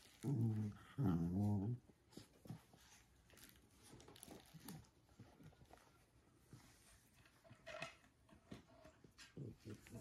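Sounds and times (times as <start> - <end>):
dog growling: 0.0 - 1.9.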